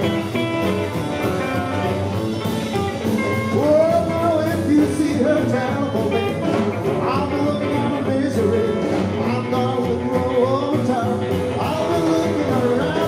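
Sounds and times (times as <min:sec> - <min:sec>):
drum beat: 0:00.0 - 0:13.0
electric guitar lines: 0:00.0 - 0:13.0
strummed acoustic guitar: 0:00.0 - 0:13.0.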